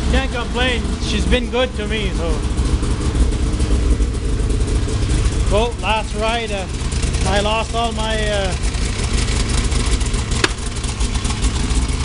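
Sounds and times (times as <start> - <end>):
snowmobile engine idling: 0.0 - 12.0.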